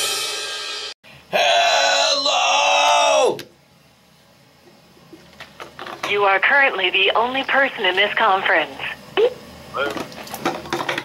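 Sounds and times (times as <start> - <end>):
person yelling: 1.3 - 3.4.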